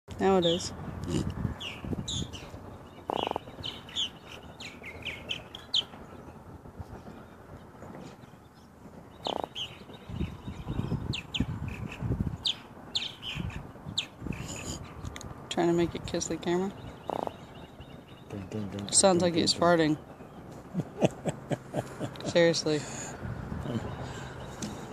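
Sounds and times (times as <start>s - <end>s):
small birds chirping: 0.2s - 24.9s
fish croaking: 3.1s - 3.5s.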